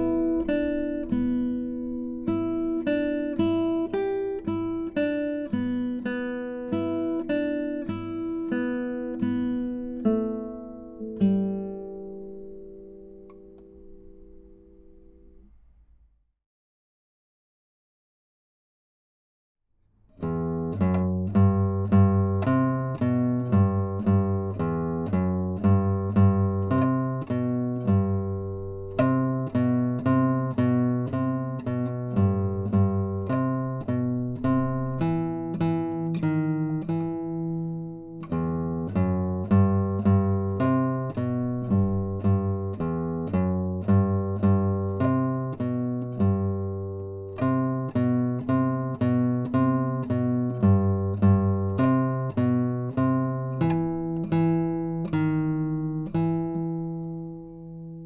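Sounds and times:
classical guitar fingerpicked: 0:00.0 - 0:16.0, 0:20.0 - 0:58.0.

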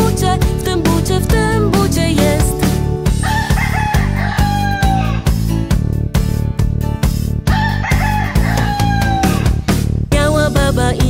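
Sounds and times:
children's song backing music: 0:00.0 - 0:03.0, 0:10.1 - 0:11.0
rooster crowing: 0:03.2 - 0:05.3, 0:07.5 - 0:09.6.

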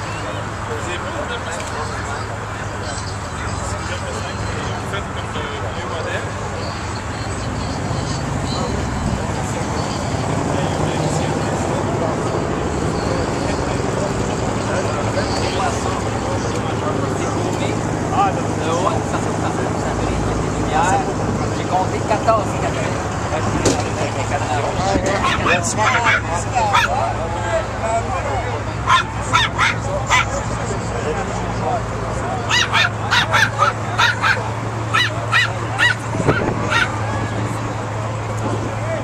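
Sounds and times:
engine humming: 0:00.0 - 0:39.0
people chattering: 0:00.0 - 0:39.0.

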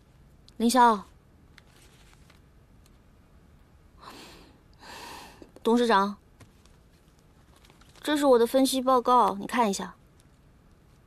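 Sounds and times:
soft breaths: 0:04.0 - 0:05.6.

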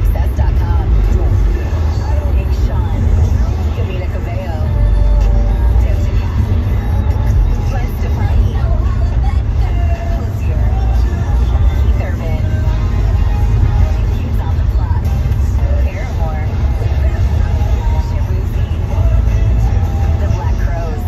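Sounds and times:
car engine and tyres rumbling: 0:00.0 - 0:21.0
faint voices or music: 0:00.0 - 0:21.0.

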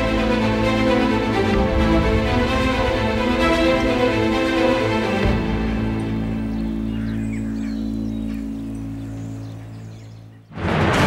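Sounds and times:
low sustained orchestral chord: 0:00.0 - 0:11.0
faint bird chirps: 0:06.4 - 0:10.5.

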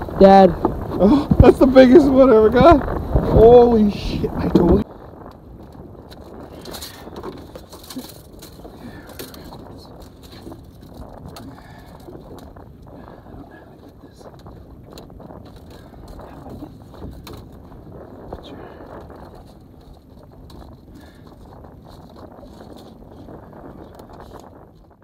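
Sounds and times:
boat deck background noise: 0:00.0 - 0:25.0.

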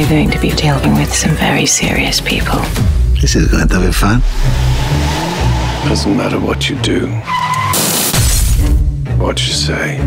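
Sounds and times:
deep rumbling hit: 0:02.4 - 0:07.3
music score: 0:03.2 - 0:07.6
hissing whoosh: 0:03.5 - 0:07.3.

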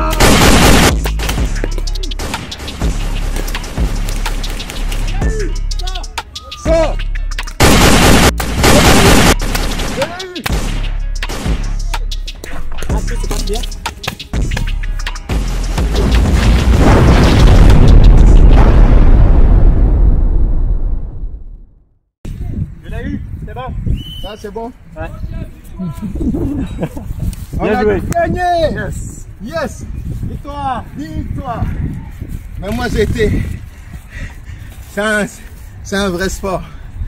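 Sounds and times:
background music: 0:00.0 - 0:16.8
explosion boom with rumbling: 0:15.9 - 0:21.9.

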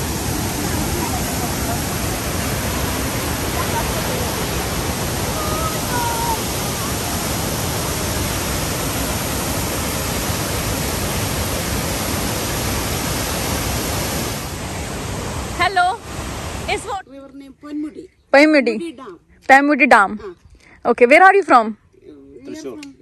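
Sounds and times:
waterfall rushing over rock: 0:00.0 - 0:16.9.

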